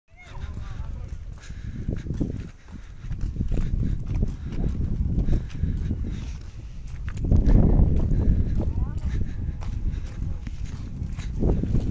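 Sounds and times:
footsteps on dry dirt: 0.1s - 11.9s
heavy low rumble: 0.4s - 11.9s.

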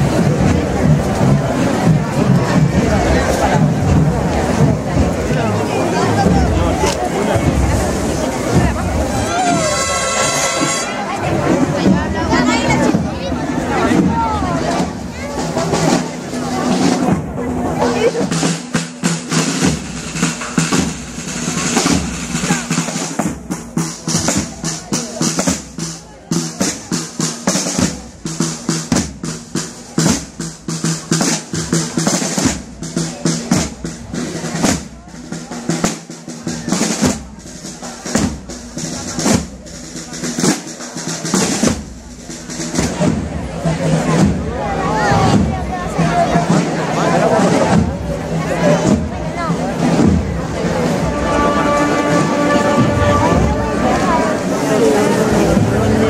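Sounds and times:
bass drum strokes: 0.0s - 56.0s
snare drums rolling: 0.0s - 56.0s.

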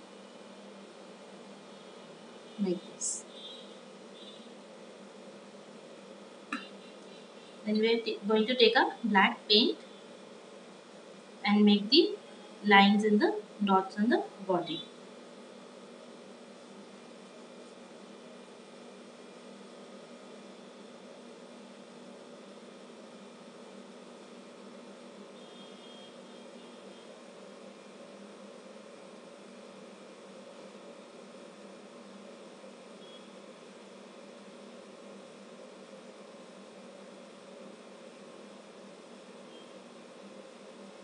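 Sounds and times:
faint low hum: 0.0s - 41.0s.

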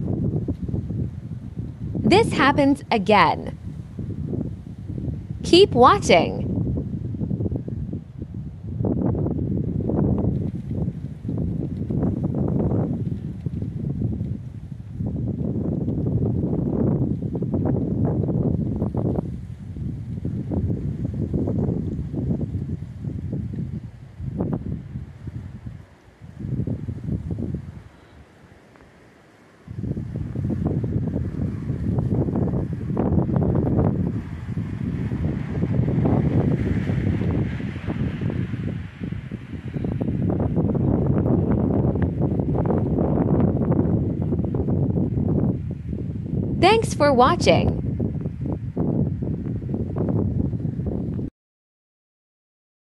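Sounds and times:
wind buffeting microphone: 0.0s - 51.3s.

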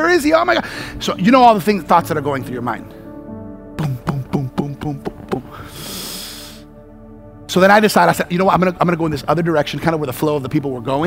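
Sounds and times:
soft background music: 0.0s - 11.0s
man exhaling into microphone: 5.5s - 6.7s.

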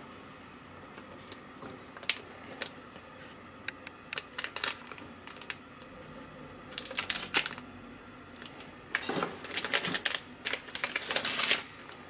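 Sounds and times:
plastic sachets crinkling: 2.0s - 2.8s, 4.1s - 5.6s, 6.7s - 7.6s, 8.4s - 12.0s.

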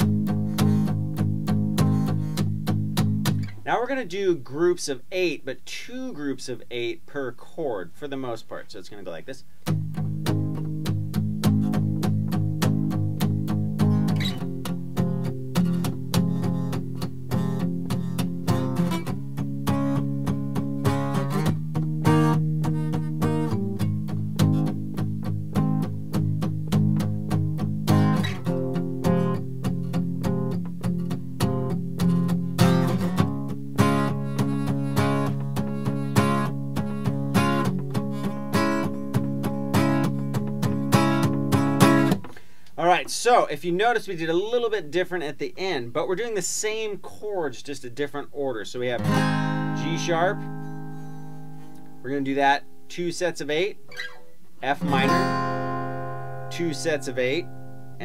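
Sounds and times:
acoustic guitar strummed with pick: 0.0s - 5.4s, 9.0s - 45.0s, 48.8s - 58.0s.

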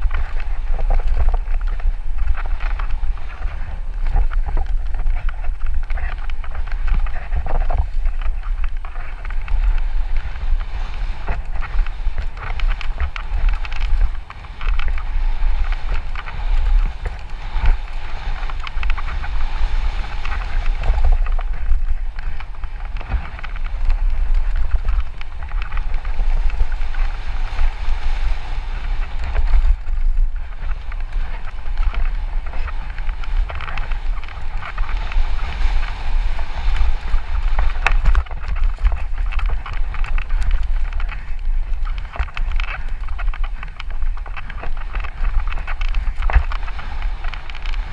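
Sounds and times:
bike clicks and rattles: 0.0s - 47.9s
tyres on loose dirt: 0.0s - 47.9s
wind rumble on microphone: 0.0s - 47.9s.

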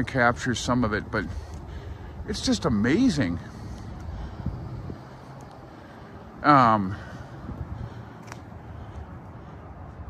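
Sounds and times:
low outdoor rumble: 0.0s - 10.0s
wind buffeting microphone: 0.0s - 10.0s.

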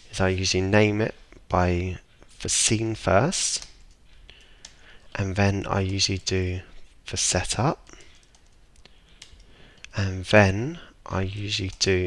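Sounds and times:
keyboard typing clicks: 3.6s - 4.8s, 7.8s - 9.9s.

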